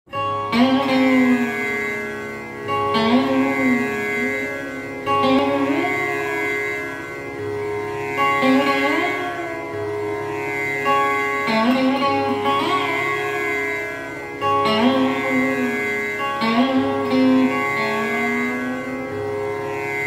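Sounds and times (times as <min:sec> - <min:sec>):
slide guitar melody with gliding notes: 0:00.1 - 0:20.0
steady drone: 0:00.4 - 0:20.0.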